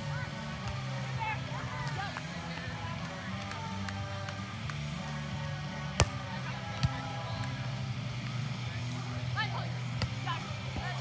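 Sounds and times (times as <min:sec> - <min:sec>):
background music: 0:00.0 - 0:11.0
voices: 0:00.0 - 0:11.0
faint volleyball hit: 0:05.9 - 0:07.6, 0:09.9 - 0:11.0
hand slapping volleyball: 0:06.0 - 0:06.2.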